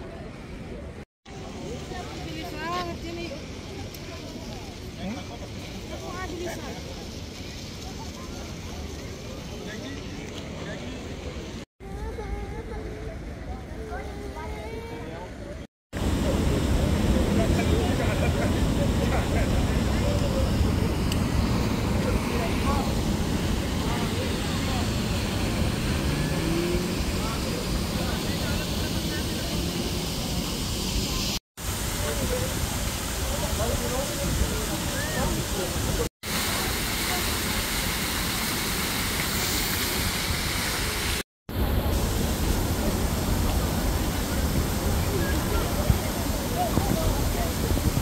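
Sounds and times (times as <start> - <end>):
faint voices: 0.0 - 38.6, 40.6 - 48.0
low rumble of city traffic: 0.0 - 48.0
fountain water splashing into basin: 16.0 - 48.0.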